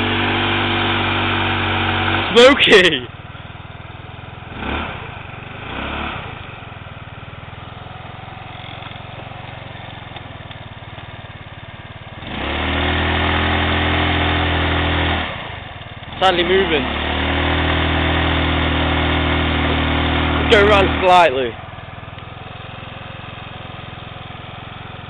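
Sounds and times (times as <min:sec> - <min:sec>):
scooter engine revving: 0:00.0 - 0:25.0.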